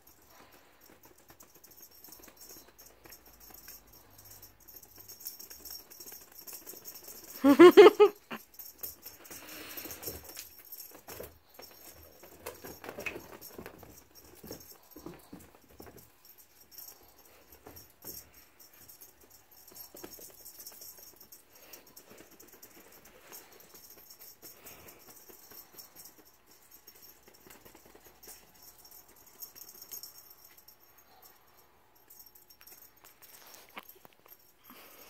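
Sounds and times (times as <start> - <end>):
light rattling and jingling: 0.0 - 35.0.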